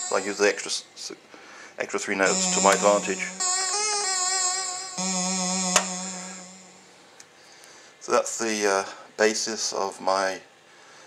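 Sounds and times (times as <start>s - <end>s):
synthesizer held note: 2.2s - 7.0s.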